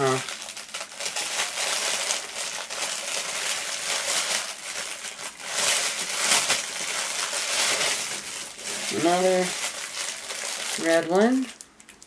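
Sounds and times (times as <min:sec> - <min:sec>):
plastic package crinkling: 0:00.0 - 0:12.0.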